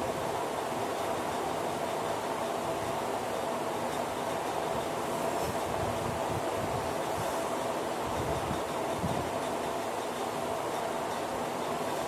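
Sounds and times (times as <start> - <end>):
electric fan humming: 0.0 - 12.0.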